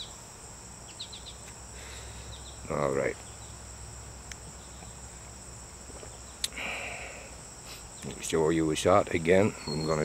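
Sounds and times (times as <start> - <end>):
insects trilling: 0.0 - 10.0
short breathy noise: 6.4 - 7.9.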